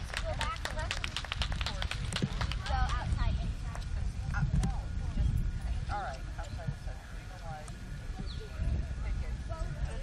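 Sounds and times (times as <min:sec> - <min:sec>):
distant indistinct voices: 0:00.0 - 0:10.0
steady low rumble: 0:00.0 - 0:10.0.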